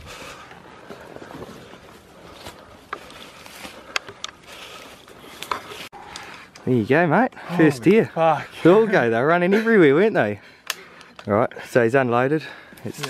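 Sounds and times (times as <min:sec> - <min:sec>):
rustle of ferns and leaves: 0:00.3 - 0:05.9.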